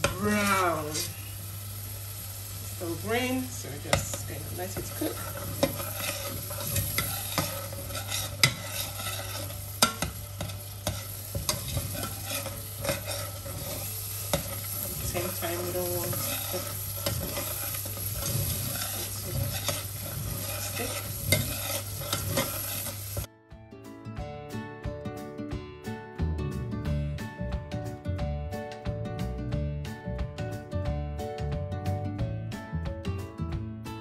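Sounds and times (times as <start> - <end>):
pulp sizzling: 4.3 - 23.3
metal spoon scraping pot: 4.8 - 23.3
music with plucked notes: 23.3 - 34.0.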